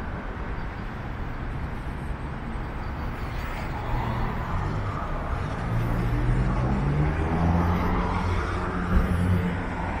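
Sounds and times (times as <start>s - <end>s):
street traffic: 0.0s - 10.0s.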